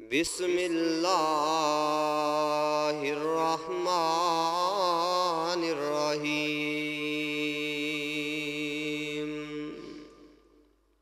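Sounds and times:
man reciting melodically: 0.0s - 10.7s.

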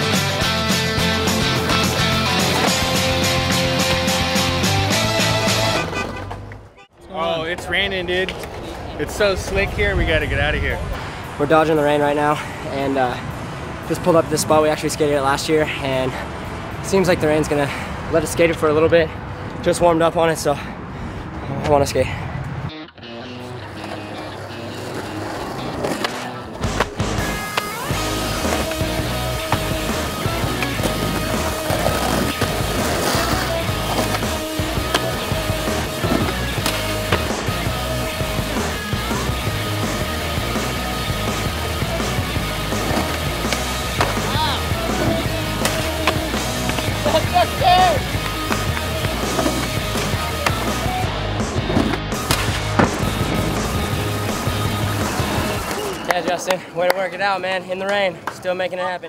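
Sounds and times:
skateboard wheels rolling on asphalt: 0.0s - 13.2s, 23.6s - 59.0s
skateboard clacking: 23.7s - 38.8s, 39.9s - 51.0s, 51.6s - 57.2s.

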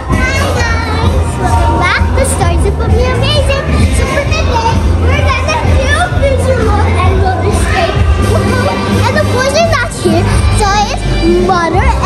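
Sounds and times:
loud pop music with bass beat: 0.0s - 12.0s
girl's excited high-pitched voice: 0.1s - 12.0s.

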